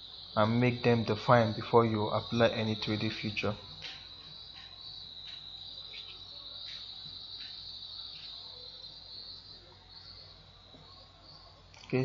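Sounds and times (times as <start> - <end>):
high-pitched insect-like trill: 0.0 - 12.0
low room noise: 0.0 - 12.0.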